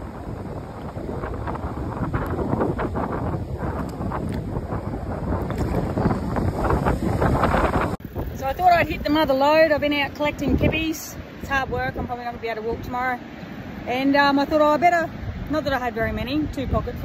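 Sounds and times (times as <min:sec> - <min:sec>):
wind buffeting microphone: 0:00.0 - 0:13.2, 0:13.8 - 0:17.0
small waves washing on beach: 0:00.0 - 0:17.0.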